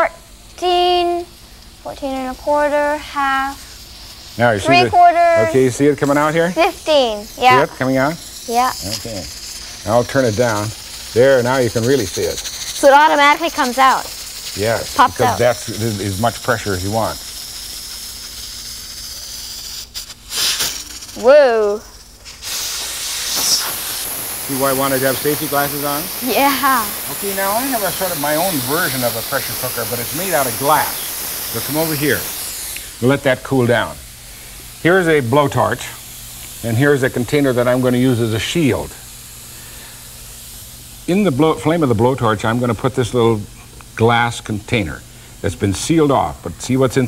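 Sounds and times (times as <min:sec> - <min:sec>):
pressure cooker steam hissing: 0:00.0 - 0:47.0
brief rush of steam: 0:17.2 - 0:21.2, 0:21.9 - 0:33.0.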